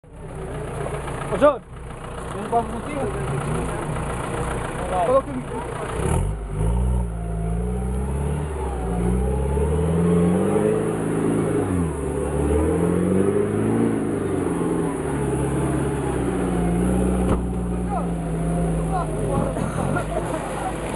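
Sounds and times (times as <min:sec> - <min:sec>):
suv engine revving: 0:00.3 - 0:20.9.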